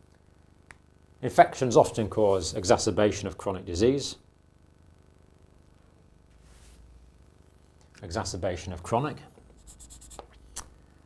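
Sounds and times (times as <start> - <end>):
marker pen scratching paper: 9.5 - 10.7.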